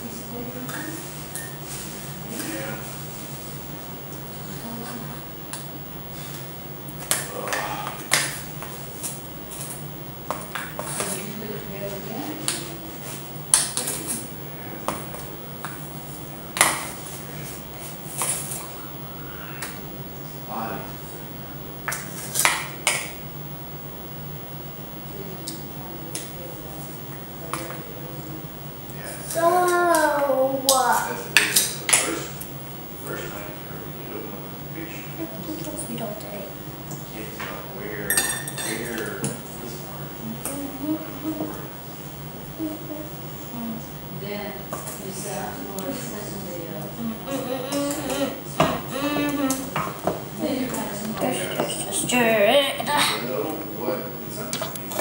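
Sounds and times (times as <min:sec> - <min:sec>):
girl's drawn-out wordless voice: 0:29.4 - 0:31.2, 0:47.0 - 0:49.7, 0:50.4 - 0:53.2.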